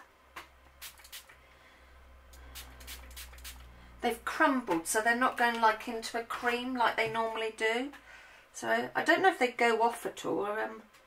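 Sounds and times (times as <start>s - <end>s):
spray bottle spritzing water: 0.8s - 1.4s, 2.4s - 3.7s.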